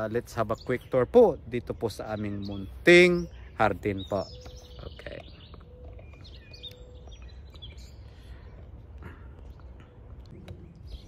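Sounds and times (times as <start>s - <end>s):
birds chirping: 0.0s - 11.0s
steady low rumble: 6.3s - 11.0s.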